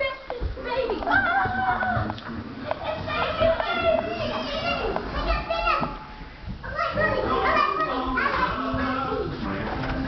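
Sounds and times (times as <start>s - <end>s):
children shouting and yelling: 0.0s - 2.2s, 2.8s - 9.4s.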